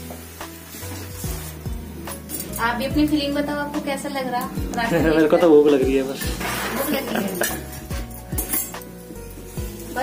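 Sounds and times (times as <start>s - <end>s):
music with deep beat: 0.0s - 9.9s
kitchen utensils clinking: 1.3s - 3.6s, 6.0s - 10.0s.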